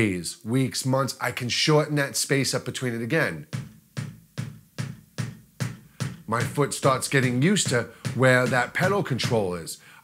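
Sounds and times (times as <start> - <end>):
kick drum beater hits: 3.4 - 9.5.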